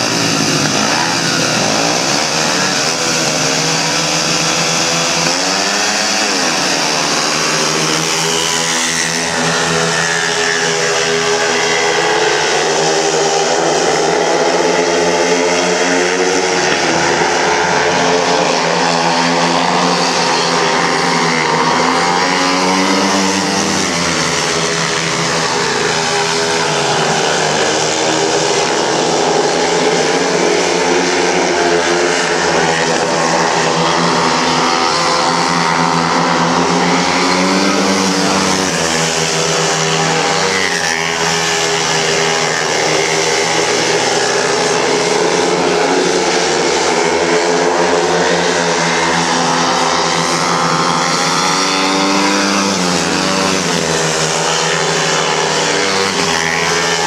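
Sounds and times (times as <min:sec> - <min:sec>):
motorcycle engines racing: 0:00.0 - 0:57.0.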